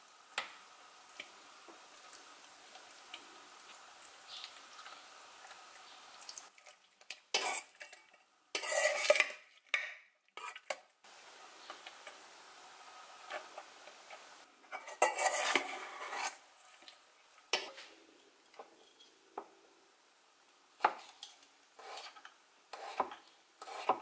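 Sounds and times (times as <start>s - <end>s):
metal spoon scraping steel bowl: 8.6s - 9.4s, 14.7s - 16.4s.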